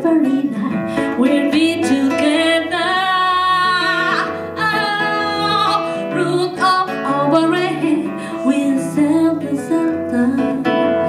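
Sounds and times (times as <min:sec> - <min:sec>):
plucked acoustic guitar: 0:00.0 - 0:11.0
woman singing into microphone: 0:00.0 - 0:11.0.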